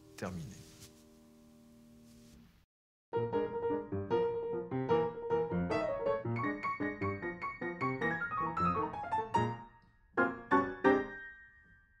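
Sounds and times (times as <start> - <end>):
piano chords ringing: 3.2 - 12.0.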